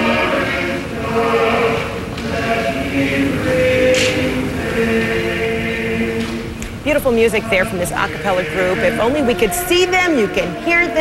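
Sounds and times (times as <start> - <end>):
male a cappella choir singing: 0.0 - 11.0.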